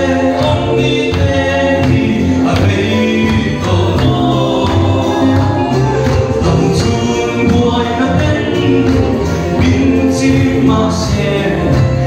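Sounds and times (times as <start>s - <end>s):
group singing a gospel hymn: 0.0s - 12.0s.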